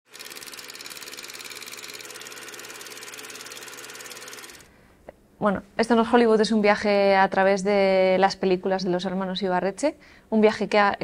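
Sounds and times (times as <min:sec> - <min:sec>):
film projector clatter: 0:00.1 - 0:04.7.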